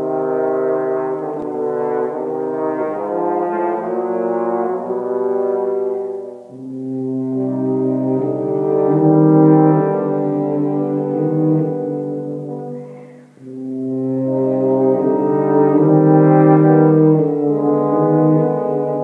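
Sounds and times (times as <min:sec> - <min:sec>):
brass playing slow held chords: 0:00.0 - 0:19.0.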